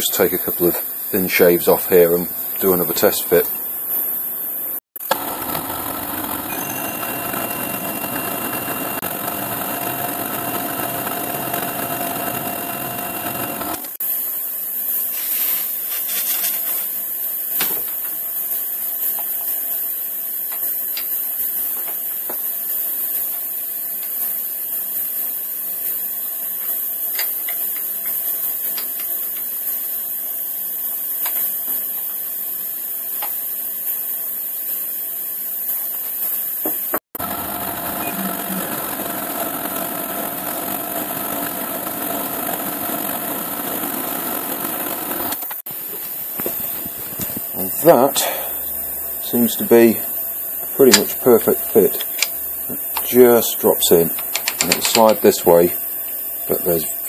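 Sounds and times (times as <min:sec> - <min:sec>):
faint steady whine: 0:00.0 - 0:14.4, 0:37.2 - 0:57.0
milling machine cutting metal: 0:05.0 - 0:14.0, 0:37.2 - 0:57.0
steady hiss: 0:45.7 - 0:57.0.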